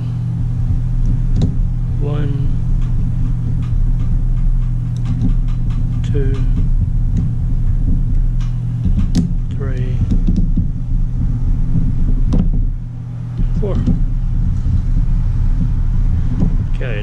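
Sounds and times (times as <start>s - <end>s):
low mechanical hum: 0.0s - 17.0s.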